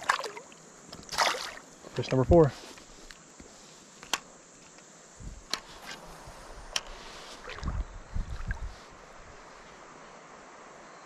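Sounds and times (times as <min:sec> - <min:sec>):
steady hiss: 0:00.3 - 0:11.0.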